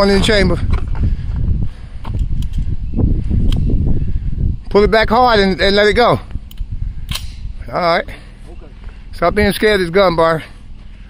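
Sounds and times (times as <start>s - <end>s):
wind rumbling on microphone: 0.0s - 10.2s
rifle handling clicks: 6.4s - 7.4s.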